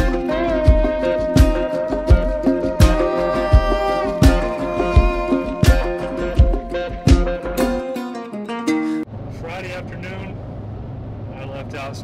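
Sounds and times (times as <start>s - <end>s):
truck rumble inside cab: 9.1s - 12.0s
man talking: 9.3s - 10.4s, 11.3s - 12.0s.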